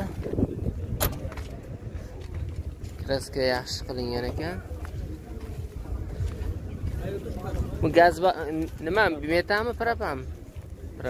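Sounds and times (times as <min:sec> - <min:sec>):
motor vehicles rumbling: 0:00.0 - 0:11.0.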